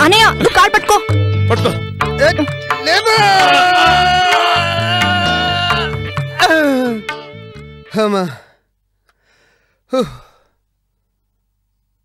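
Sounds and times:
person sighing: 9.3 - 10.6.

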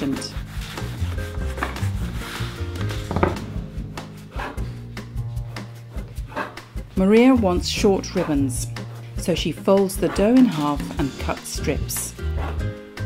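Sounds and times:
rolling pin rubbing dough: 0.0 - 12.8
background music: 0.0 - 13.0
light knocks on wooden board: 3.1 - 3.5.

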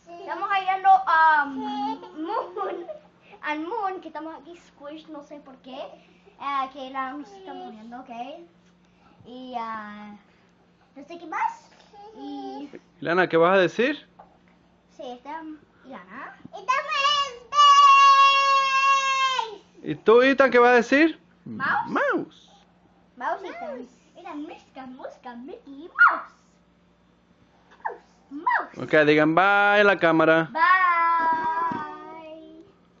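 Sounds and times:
child saying bye sing-song: 30.6 - 32.7.

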